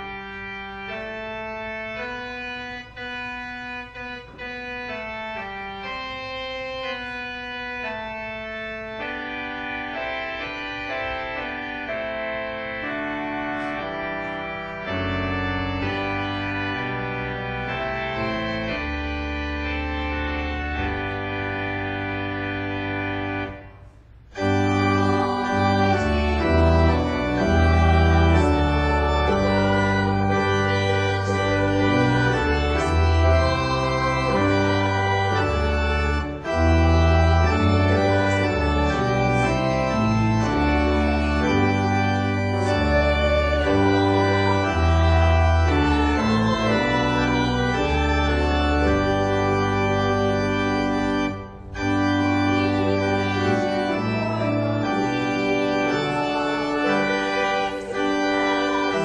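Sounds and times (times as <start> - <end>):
church organ chords: 0.0 - 59.0.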